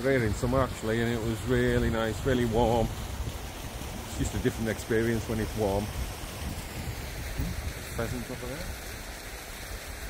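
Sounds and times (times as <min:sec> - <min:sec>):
river rushing over stones: 0:00.0 - 0:10.0
wind buffeting microphone: 0:00.0 - 0:10.0.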